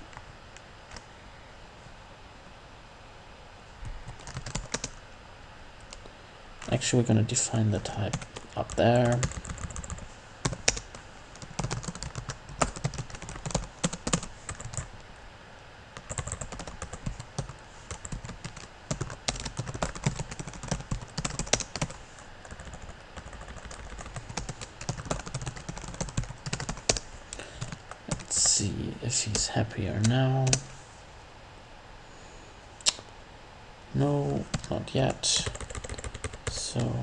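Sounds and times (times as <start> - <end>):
typing on computer keyboard: 4.1 - 5.0, 8.1 - 14.9, 16.0 - 27.0, 35.4 - 36.6.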